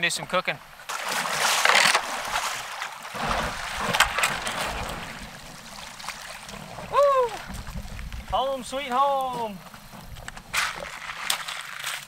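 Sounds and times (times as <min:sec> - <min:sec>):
paddle splashing in water: 0:00.7 - 0:12.0
hull scraping on gravel: 0:01.4 - 0:12.0.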